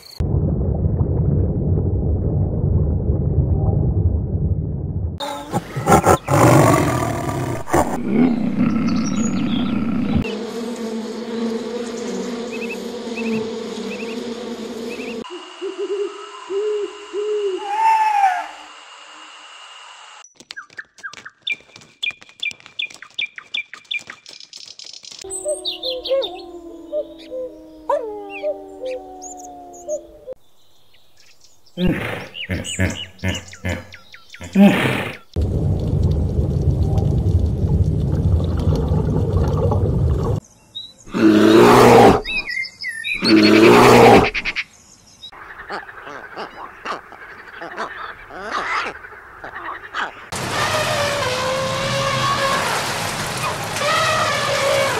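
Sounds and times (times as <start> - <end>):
chirps: 20.3 - 30.1
animal calls: 25.2 - 30.4, 45.5 - 52.7.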